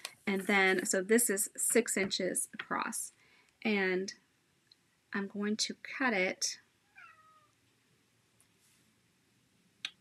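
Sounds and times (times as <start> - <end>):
cat meow: 6.9 - 7.5.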